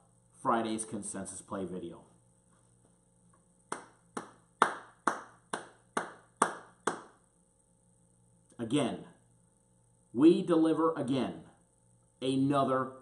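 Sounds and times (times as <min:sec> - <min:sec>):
man clapping hands: 0:03.7 - 0:07.2.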